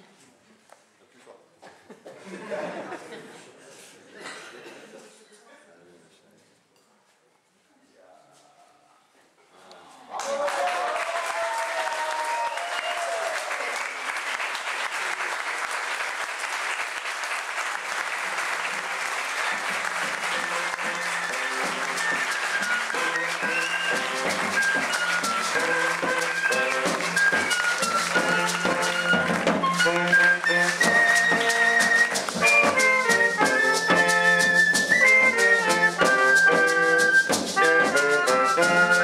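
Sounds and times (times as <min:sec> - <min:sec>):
crowd applauding: 0:10.0 - 0:39.0.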